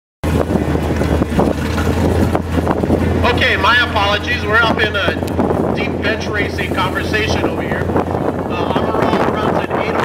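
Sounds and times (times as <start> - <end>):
car engine idling: 0.2 - 9.8
wind buffeting microphone: 0.2 - 10.0.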